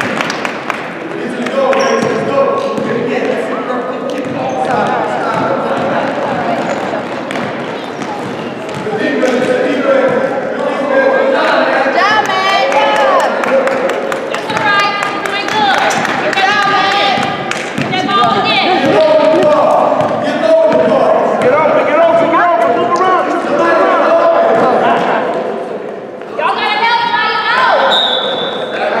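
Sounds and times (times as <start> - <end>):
basketball bouncing on court: 1.8 - 3.1, 4.1 - 9.4, 15.5 - 22.4
players and spectators shouting: 14.6 - 25.3.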